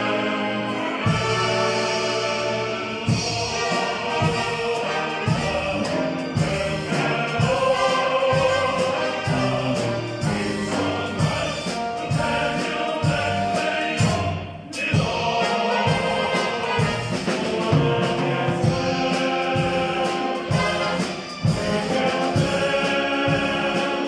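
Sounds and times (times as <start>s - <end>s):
choir singing: 0.0s - 24.0s
orchestral backing with beat: 0.0s - 24.0s.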